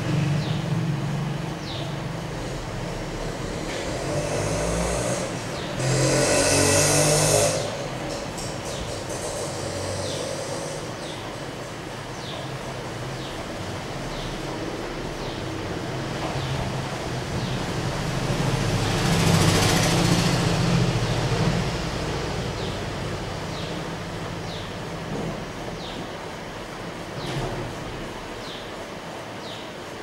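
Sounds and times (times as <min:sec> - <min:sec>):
vehicle passing: 0:00.0 - 0:11.1, 0:12.9 - 0:24.6.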